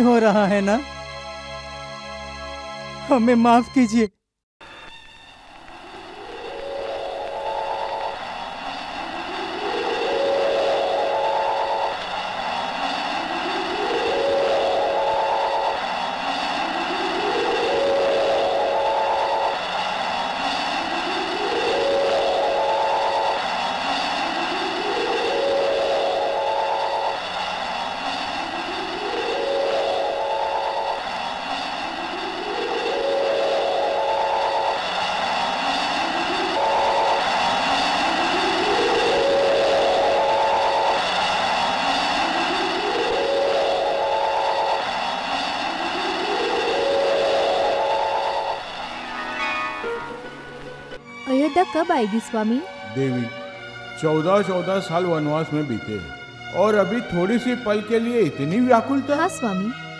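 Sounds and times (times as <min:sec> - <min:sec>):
electronic rising pitch effect: 0:04.6 - 0:51.4
steady high hum: 0:05.0 - 0:51.1.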